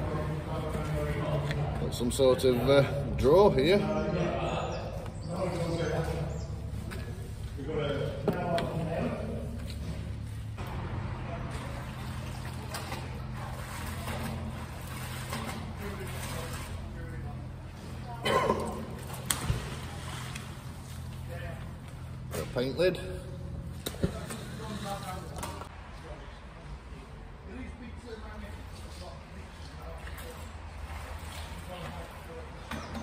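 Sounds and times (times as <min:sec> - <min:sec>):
indistinct voices: 0:00.0 - 0:20.0.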